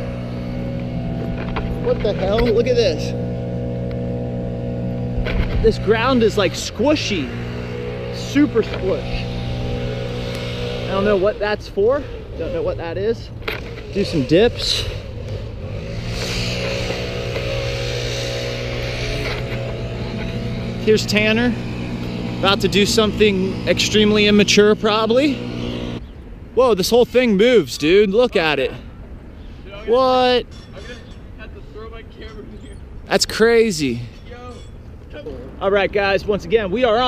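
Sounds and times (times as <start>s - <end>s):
vehicle engine humming: 0.0s - 37.0s.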